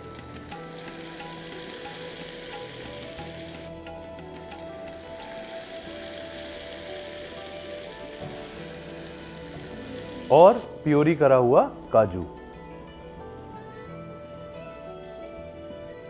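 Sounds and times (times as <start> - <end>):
puree being poured: 0.0 - 11.4
soft background music: 0.0 - 16.0
food sizzling in a frying pan: 0.1 - 10.9.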